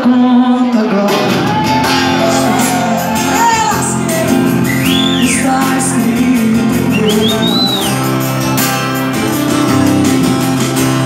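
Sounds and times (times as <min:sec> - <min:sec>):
acoustic guitar: 0:00.0 - 0:11.0
drums: 0:00.9 - 0:11.0
bass guitar: 0:01.1 - 0:11.0
people shouting: 0:01.4 - 0:05.3.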